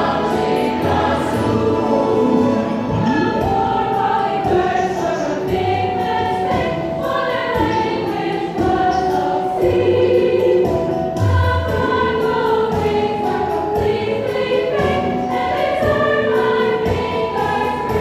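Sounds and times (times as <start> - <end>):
mixed chorus singing: 0.0 - 18.0.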